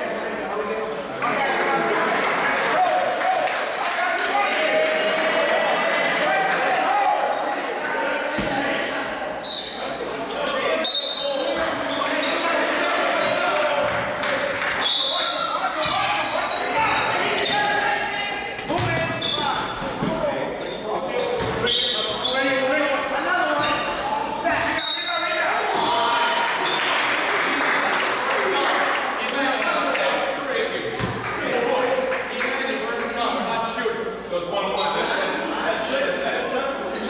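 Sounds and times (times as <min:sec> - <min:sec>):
people calling out and talking: 0:00.0 - 0:37.0
shoe squeaks: 0:06.4 - 0:07.5, 0:09.4 - 0:14.0, 0:14.8 - 0:25.4, 0:34.7 - 0:35.2.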